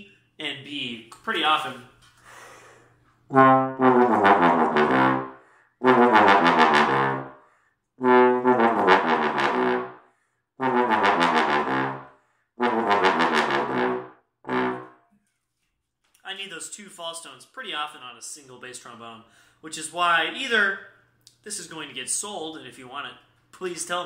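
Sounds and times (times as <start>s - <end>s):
bass trombone low notes: 3.3s - 7.4s, 8.0s - 10.0s, 10.6s - 15.0s.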